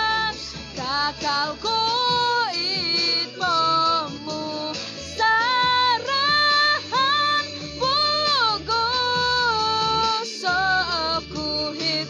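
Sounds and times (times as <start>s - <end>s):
girl singing: 0.0s - 12.0s
soft backing accompaniment: 0.0s - 12.0s.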